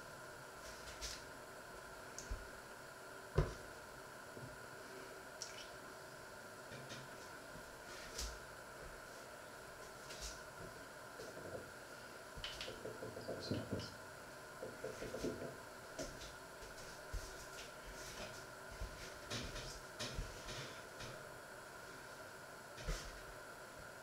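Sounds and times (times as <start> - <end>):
steady hum: 0.0 - 24.0.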